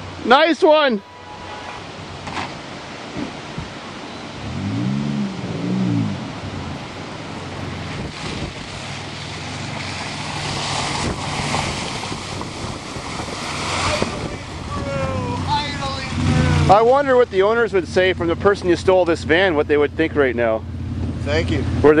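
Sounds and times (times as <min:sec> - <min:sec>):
wind rushing on microphone: 0:01.9 - 0:17.6
van engine revving: 0:04.4 - 0:22.0.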